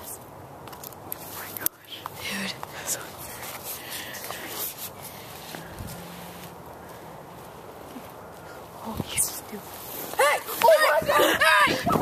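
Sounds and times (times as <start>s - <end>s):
person whispering: 1.3s - 3.6s.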